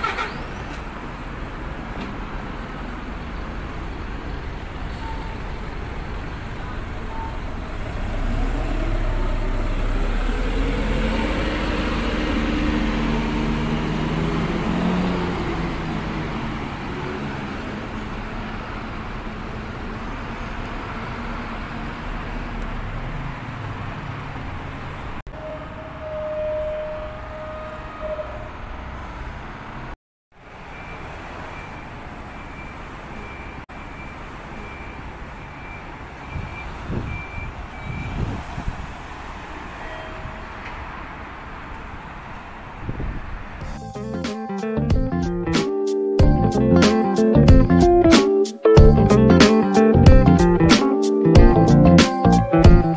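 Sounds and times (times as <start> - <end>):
diesel bus engine rumbling: 0.0 - 52.9
street traffic: 0.0 - 52.9.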